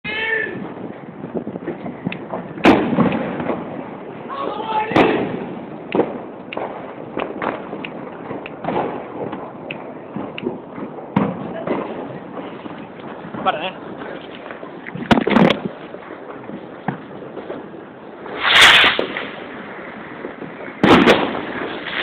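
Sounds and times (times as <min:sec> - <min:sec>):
loud firework bangs: 0:00.1 - 0:22.0
firecracker pops: 0:00.6 - 0:03.9, 0:04.9 - 0:22.0.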